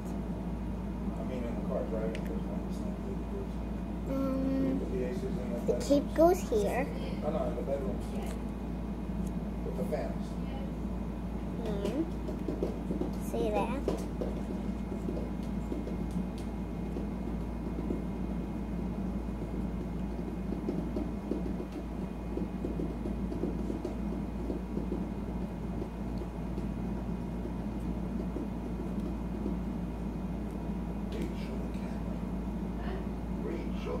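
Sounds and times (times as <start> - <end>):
cooling appliance humming: 0.0 - 34.0.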